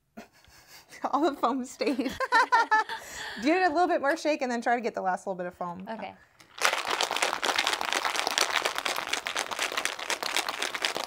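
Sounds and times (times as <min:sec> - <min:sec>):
cocktail shaker rattling: 0:06.5 - 0:11.0.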